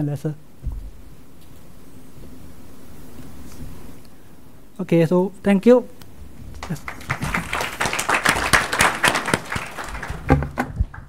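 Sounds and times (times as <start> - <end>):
audience applauding: 6.5 - 11.0.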